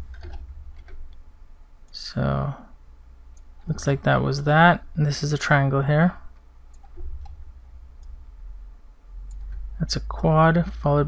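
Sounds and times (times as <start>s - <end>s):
low steady hum: 0.0s - 11.0s
computer mouse clicks: 6.7s - 7.4s, 9.3s - 9.6s.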